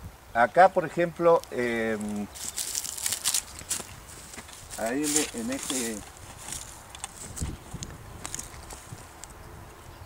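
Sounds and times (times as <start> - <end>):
footsteps on dry soil: 1.3 - 9.4.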